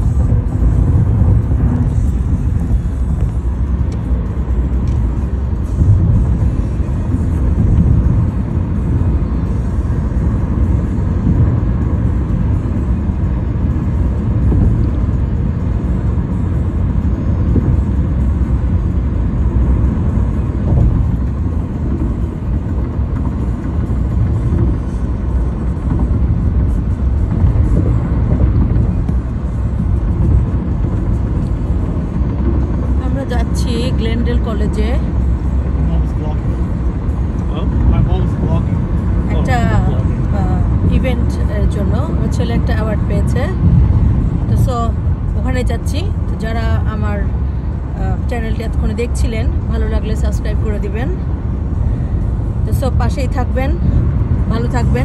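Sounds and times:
road and tyre noise inside car: 0.0s - 55.0s.

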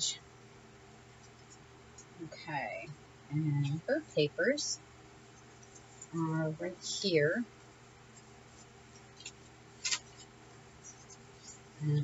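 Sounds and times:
faint steady hum: 0.0s - 12.0s
paper rustling: 8.1s - 11.8s.

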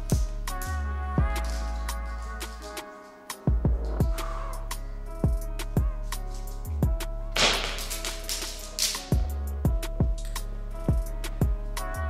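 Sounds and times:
background music: 0.0s - 12.0s
plastic rings clattering onto floor: 7.4s - 9.1s.

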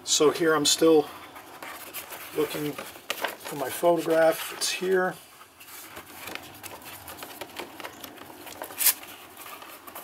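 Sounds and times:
rummaging rustles and taps: 1.4s - 10.0s.

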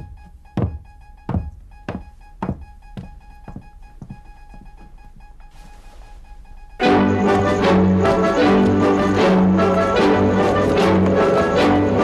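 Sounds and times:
boot footsteps on hard floor: 0.0s - 6.3s.

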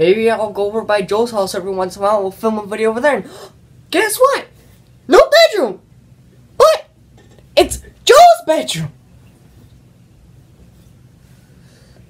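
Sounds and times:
boy's high-pitched vocal sounds: 7.6s - 8.9s.

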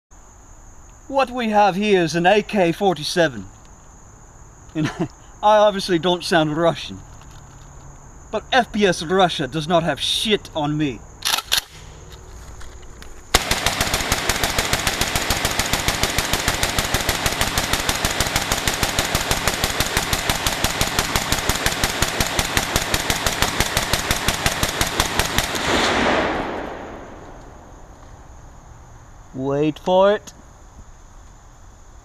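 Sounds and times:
rifle rapid gunfire: 13.3s - 27.2s
gunshot echo: 13.3s - 27.9s.

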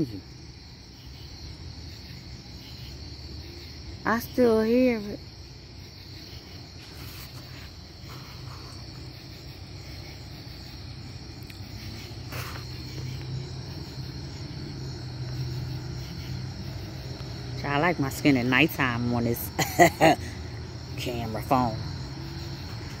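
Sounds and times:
crickets chirping: 0.0s - 23.0s.

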